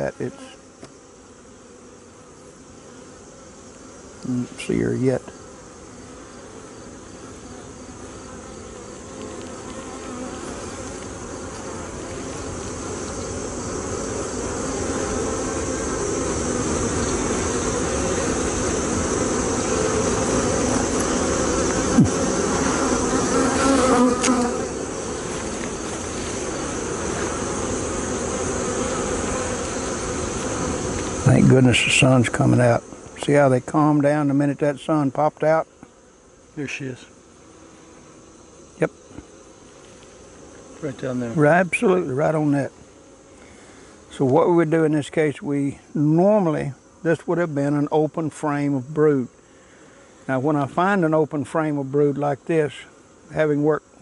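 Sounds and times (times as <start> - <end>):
honeybees buzzing: 0.0 - 54.0.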